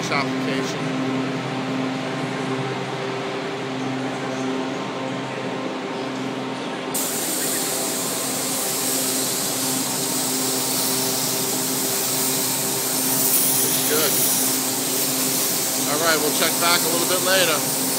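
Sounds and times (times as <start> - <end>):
ventilation fan hum: 0.0 - 17.9
spray gun hissing: 7.0 - 17.9.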